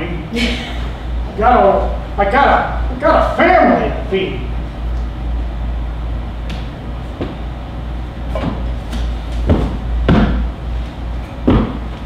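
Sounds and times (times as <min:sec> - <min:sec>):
low electrical hum: 0:00.0 - 0:12.0
footsteps on wooden stage: 0:06.4 - 0:07.5, 0:08.3 - 0:12.0.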